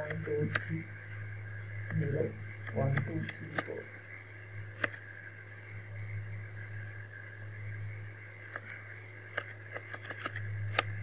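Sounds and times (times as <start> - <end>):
computer mouse clicking: 0.0 - 0.7, 1.9 - 3.8, 4.8 - 5.0, 9.3 - 11.0
low electrical hum: 0.0 - 11.0.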